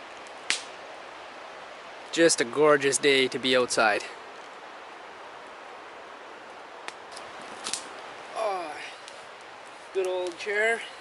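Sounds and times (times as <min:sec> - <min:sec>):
river flowing: 0:00.0 - 0:11.0.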